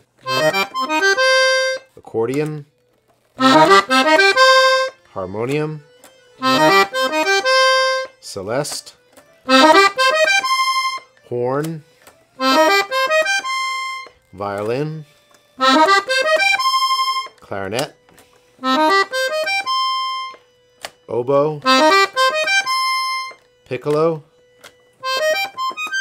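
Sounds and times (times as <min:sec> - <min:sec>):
accordion playing reedy notes: 0:00.0 - 0:02.7, 0:03.3 - 0:26.0.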